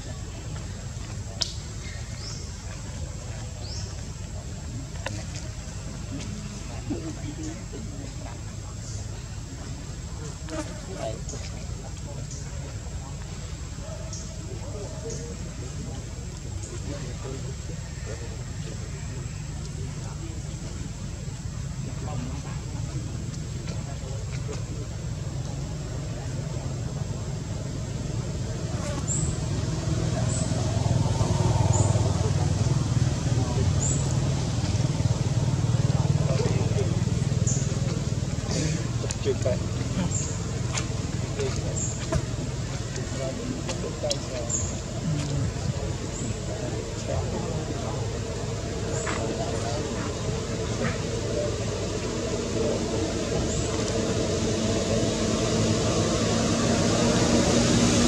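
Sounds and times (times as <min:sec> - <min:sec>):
low outdoor background noise: 0:00.0 - 0:58.0
motor vehicle rumbling: 0:00.0 - 0:58.0.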